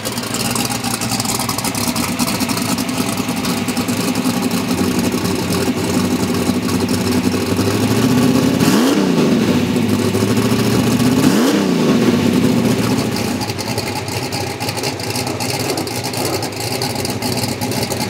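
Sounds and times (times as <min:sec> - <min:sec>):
race car engine revving: 0:00.0 - 0:18.0.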